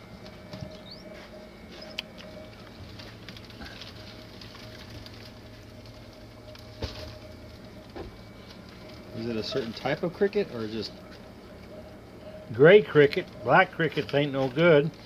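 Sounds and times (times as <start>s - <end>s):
steady low hum: 0.0s - 15.0s
crickets pattering and scratching: 0.1s - 11.6s, 12.6s - 15.0s.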